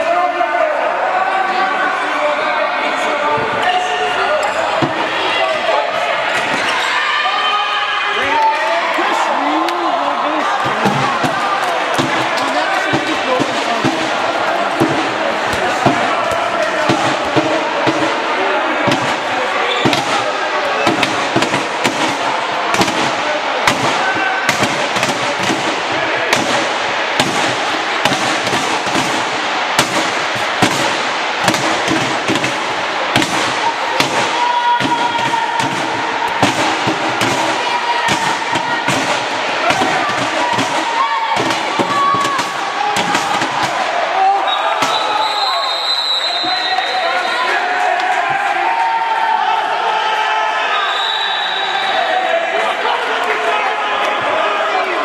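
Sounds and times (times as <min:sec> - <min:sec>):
crowd noise: 0:00.0 - 0:55.0
handball bouncing and striking: 0:14.8 - 0:25.7, 0:29.8 - 0:43.8.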